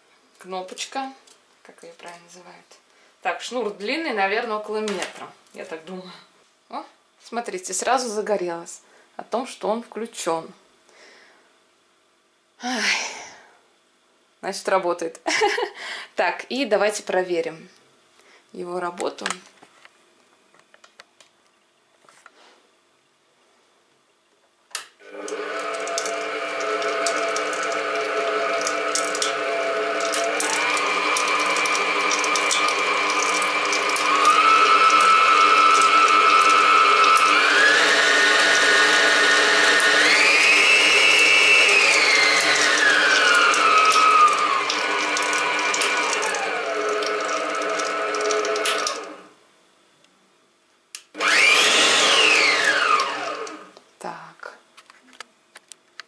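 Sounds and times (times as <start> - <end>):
stand mixer motor whine: 25.0 - 49.3, 51.2 - 53.7.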